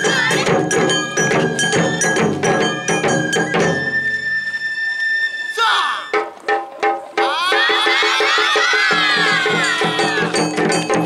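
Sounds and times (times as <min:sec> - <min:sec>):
drumming: 0:00.0 - 0:04.5, 0:06.0 - 0:11.0
high flute note: 0:02.8 - 0:06.2
voices shouting together: 0:07.2 - 0:10.5.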